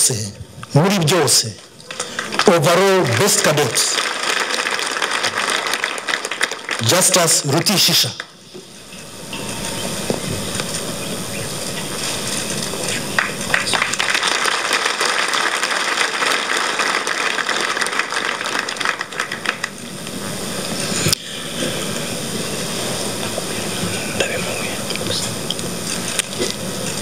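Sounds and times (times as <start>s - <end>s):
audience applauding: 1.8s - 8.3s, 12.8s - 20.7s.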